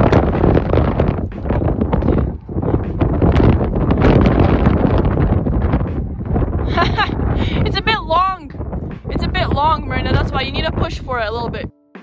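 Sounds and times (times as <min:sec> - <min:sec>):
wind buffeting microphone: 0:00.0 - 0:11.7.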